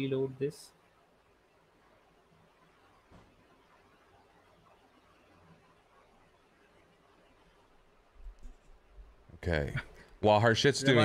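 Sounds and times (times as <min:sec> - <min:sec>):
faint low thuds: 0:03.0 - 0:03.7.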